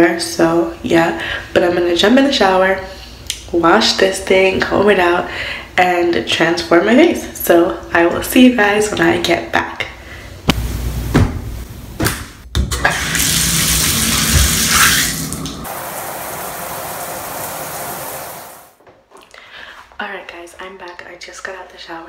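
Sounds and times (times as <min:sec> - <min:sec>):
shower spraying into tiled tub: 0:12.8 - 0:18.8.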